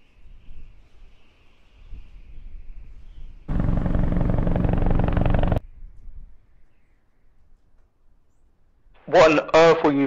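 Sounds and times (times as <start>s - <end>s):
helicopter rotor chopping: 3.5s - 5.6s.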